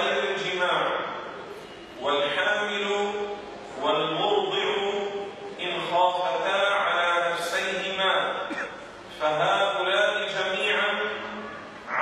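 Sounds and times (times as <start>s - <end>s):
man lecturing in chant-like voice: 0.0s - 1.3s, 2.0s - 12.0s.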